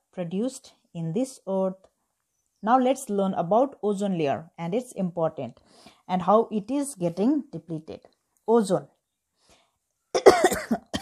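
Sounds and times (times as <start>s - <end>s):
woman coughing: 10.2s - 11.0s.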